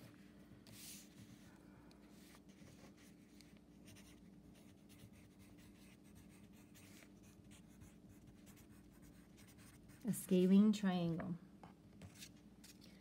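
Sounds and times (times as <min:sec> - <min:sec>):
faint steady hum: 0:00.0 - 0:13.0
pencil scratching on paper: 0:03.8 - 0:10.1.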